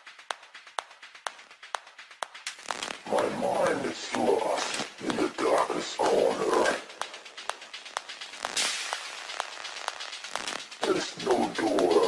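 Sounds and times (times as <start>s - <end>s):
grainy mid-range sound: 0.0s - 12.0s
short clicks on a steady beat: 0.0s - 12.0s.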